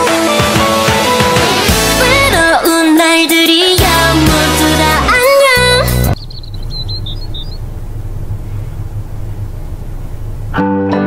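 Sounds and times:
song playing: 0.0s - 6.2s
van driving rumble: 0.0s - 10.6s
bird chirps: 6.1s - 10.3s.

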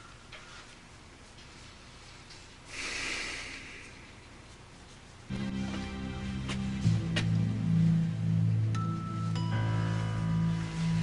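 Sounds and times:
woman breathing: 2.7s - 4.3s.

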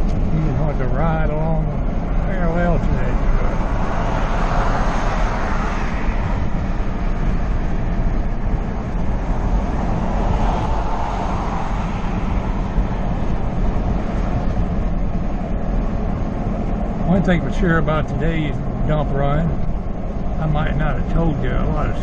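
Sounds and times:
wind and road noise: 0.0s - 22.0s.

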